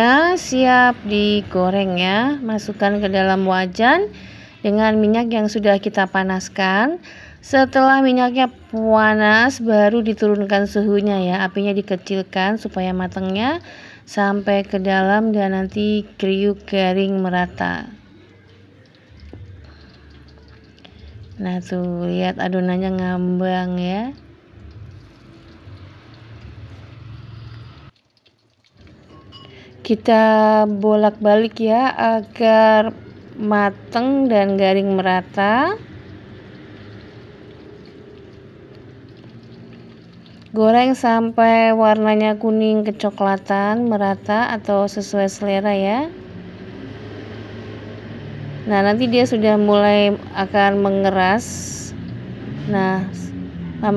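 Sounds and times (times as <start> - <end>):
oil sizzling in a wok: 0.0 - 53.9.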